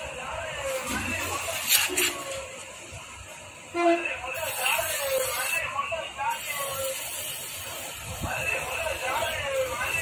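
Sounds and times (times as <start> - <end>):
aerosol spray hissing: 6.4 - 10.0.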